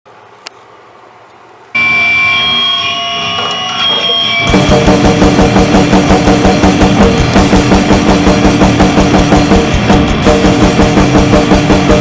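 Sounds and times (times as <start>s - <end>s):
loud drone of steady tones: 1.8s - 12.0s
drum kit blast beats: 4.4s - 12.0s.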